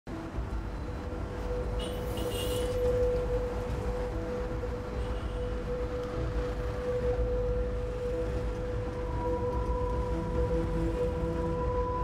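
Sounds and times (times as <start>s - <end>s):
held musical drone: 0.1s - 12.0s
street traffic rumble: 0.1s - 12.0s.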